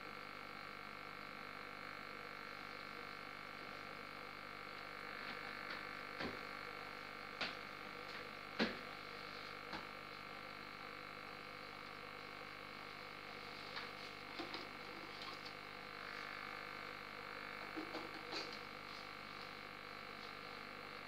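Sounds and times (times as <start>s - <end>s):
aquarium filter humming: 0.0s - 21.0s.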